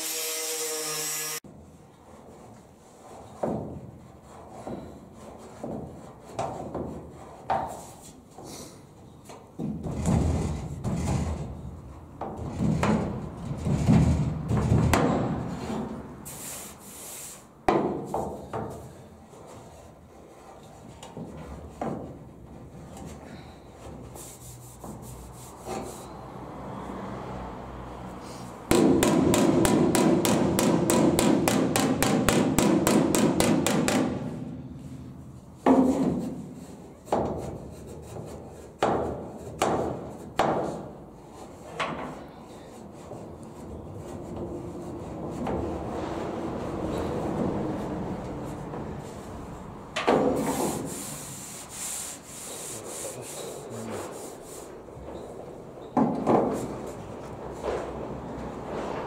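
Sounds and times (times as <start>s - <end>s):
hand rubbing on bare steel: 23.9s - 26.2s, 50.4s - 54.9s.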